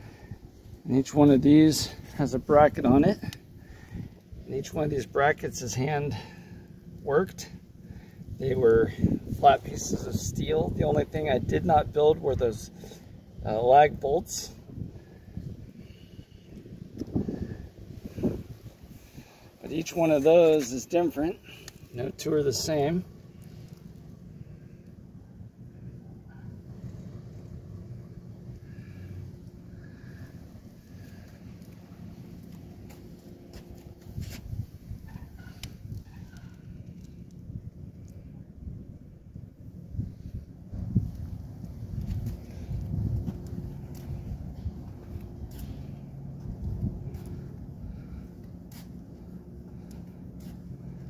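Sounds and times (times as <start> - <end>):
wind rumbling on microphone: 0.0 - 6.4, 7.8 - 19.9, 23.5 - 51.0
microphone handling noise: 32.8 - 36.2.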